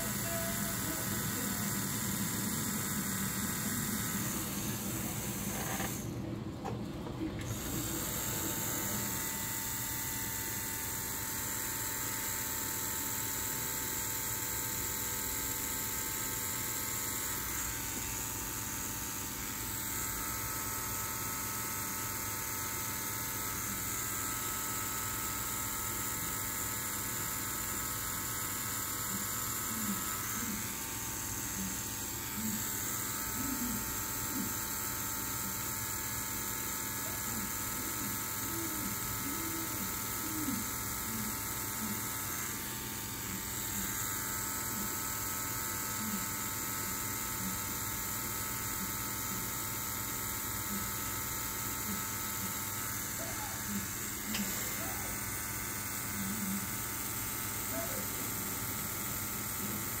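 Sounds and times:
tattoo machine humming: 0.0 - 60.0.

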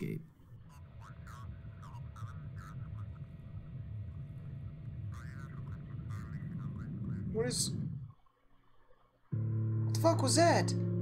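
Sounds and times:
faint steady hum: 0.0 - 11.0
low rumbling drone: 0.5 - 8.2, 9.4 - 11.0.

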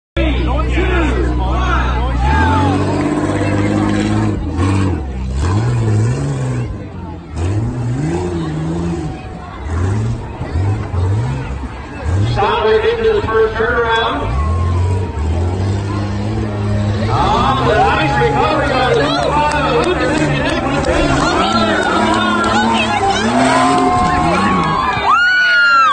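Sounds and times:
crowd voices and shouting: 0.2 - 25.9
truck engines revving: 0.2 - 25.9.

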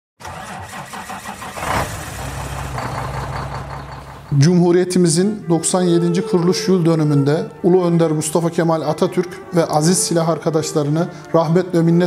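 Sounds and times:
vehicle engine cranking and idling: 0.2 - 4.8.

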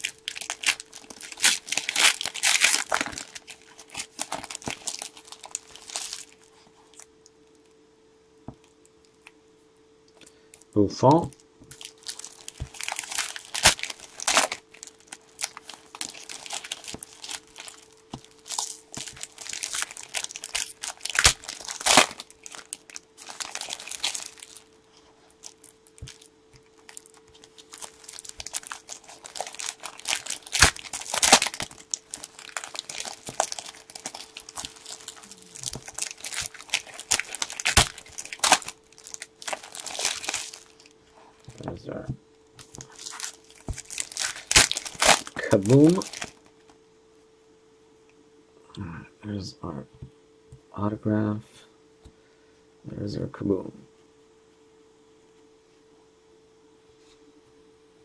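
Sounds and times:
foil wrappers crinkling and tearing: 0.0 - 7.1, 11.2 - 41.7, 42.6 - 46.5.

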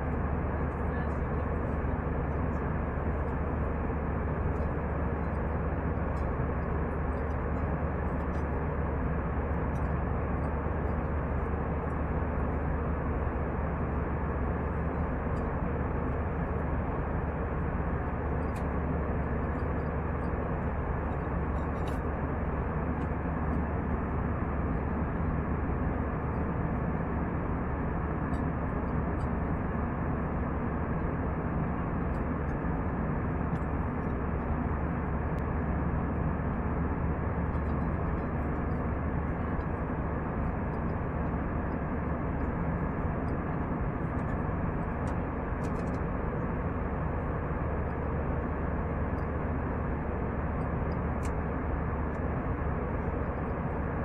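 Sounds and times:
airplane cabin engine noise: 0.0 - 54.0.

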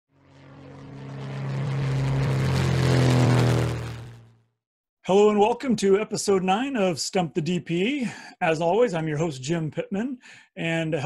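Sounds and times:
propeller airplane engine drone: 0.1 - 4.6.

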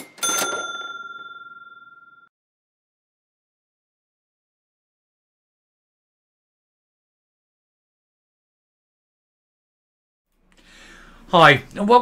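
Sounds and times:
bell ringing: 0.0 - 2.3.

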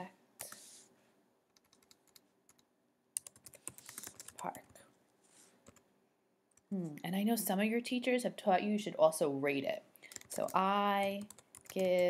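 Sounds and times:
keyboard typing clicks: 3.2 - 4.7, 10.1 - 12.0.

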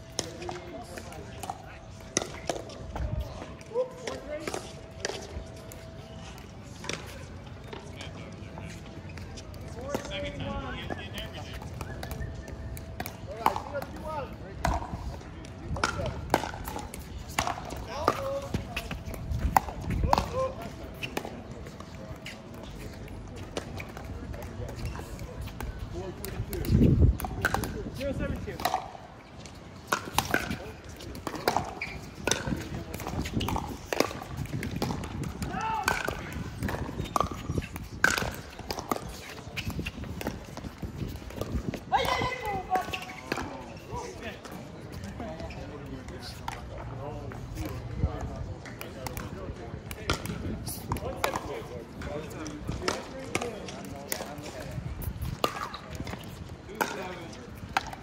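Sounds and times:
players' voices: 0.0 - 58.0
ball bouncing on court: 29.9 - 43.7, 49.9 - 51.6.

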